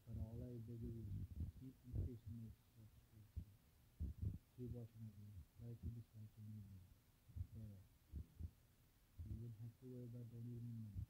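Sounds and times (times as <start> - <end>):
man's muffled voice: 0.0 - 8.5, 9.2 - 11.0
soft low thumps: 0.1 - 2.5, 3.2 - 6.6, 7.3 - 8.6, 9.2 - 9.7, 10.4 - 11.0.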